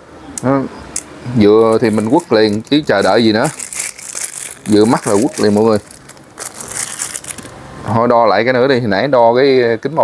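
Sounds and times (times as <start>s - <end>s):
plastic bag crinkling: 1.6s - 7.6s.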